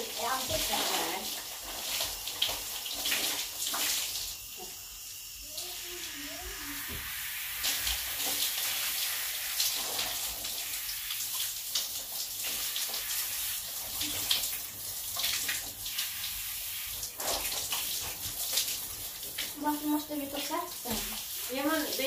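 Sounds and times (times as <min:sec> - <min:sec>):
shower water running and splashing: 0:00.0 - 0:22.0.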